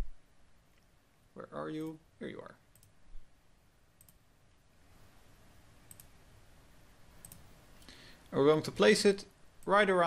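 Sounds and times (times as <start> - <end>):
low room hiss: 0.0 - 10.0
computer mouse clicks: 2.7 - 3.0, 4.0 - 4.2, 5.8 - 6.2, 7.2 - 8.0.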